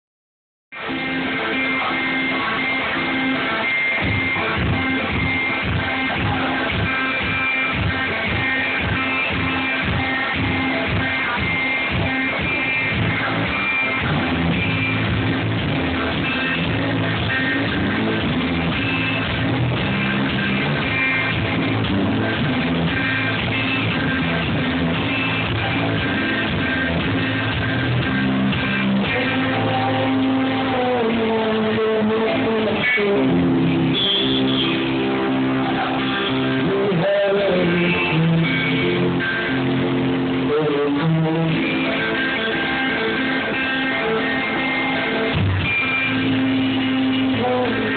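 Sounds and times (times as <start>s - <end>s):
bass guitar: 0.7s - 47.9s
electric guitar strumming: 0.7s - 47.9s
man singing: 28.7s - 34.2s, 35.6s - 39.3s, 40.2s - 45.4s, 46.0s - 47.9s.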